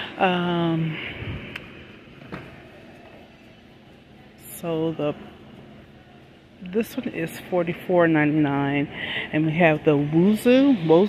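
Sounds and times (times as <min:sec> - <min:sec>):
store background hum: 0:00.0 - 0:11.0.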